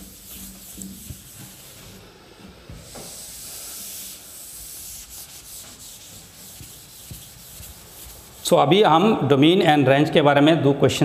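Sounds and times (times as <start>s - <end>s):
eraser rubbing chalkboard: 0.0s - 8.6s.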